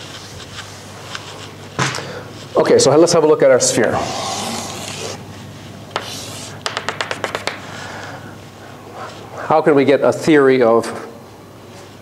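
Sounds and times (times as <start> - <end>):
chalk scraping on blackboard: 3.8 - 5.2, 5.9 - 7.6
chalk tapping on blackboard: 5.9 - 7.7.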